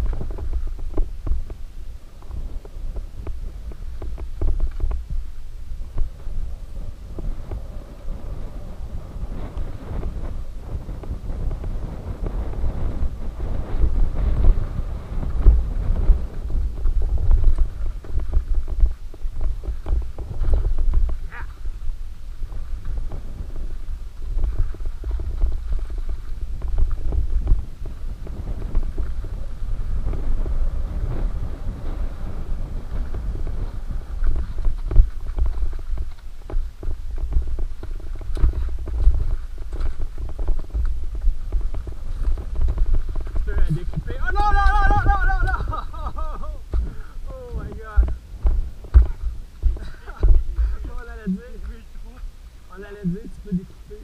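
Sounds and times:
wind rumble on microphone: 0:00.0 - 0:54.0
bike knocks and rattles: 0:15.2 - 0:31.2, 0:32.9 - 0:51.0.

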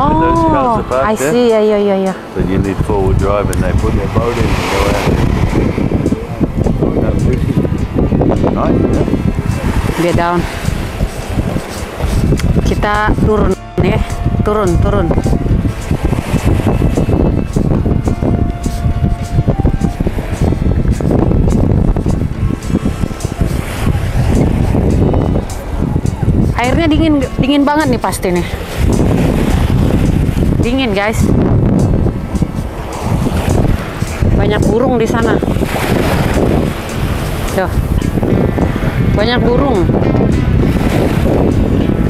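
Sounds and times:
person speaking a word: 0:00.0 - 0:01.5
background music: 0:00.0 - 0:42.0
wind buffeting microphone: 0:00.0 - 0:42.0.

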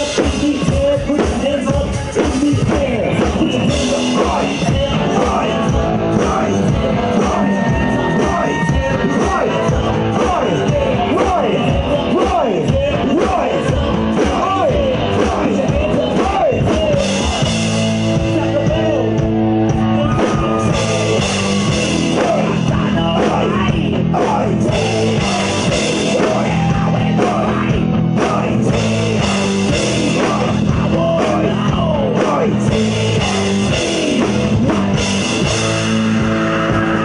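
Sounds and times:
bass guitar: 0:00.0 - 0:37.0
drum kit: 0:00.0 - 0:37.0
electric guitars: 0:00.0 - 0:37.0.

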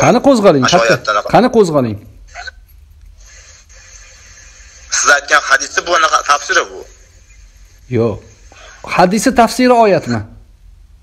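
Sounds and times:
phone line hiss: 0:03.2 - 0:08.9.

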